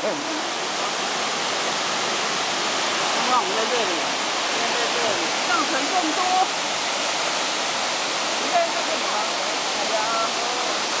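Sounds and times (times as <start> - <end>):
waterfall rushing: 0.0 - 11.0.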